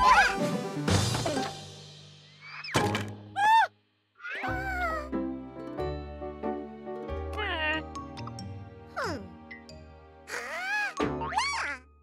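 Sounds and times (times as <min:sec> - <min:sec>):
cartoon thunk: 0:02.7 - 0:03.3
squeaky cartoon character cry: 0:03.4 - 0:05.1, 0:10.3 - 0:11.9
cartoon music: 0:10.3 - 0:12.0.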